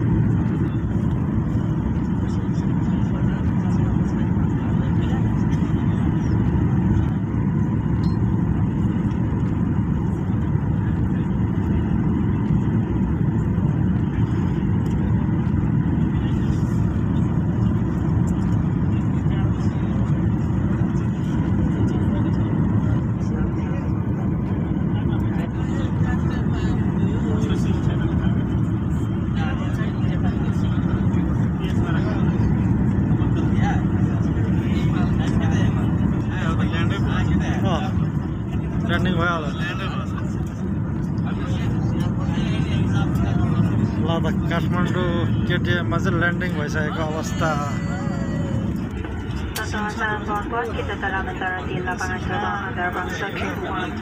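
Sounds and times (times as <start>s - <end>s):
jet airliner cabin noise: 0.0s - 54.0s.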